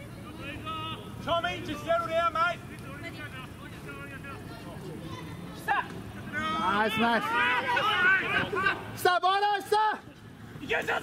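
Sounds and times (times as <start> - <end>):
players calling faintly: 0.0 - 11.0
loud shout: 5.1 - 11.0.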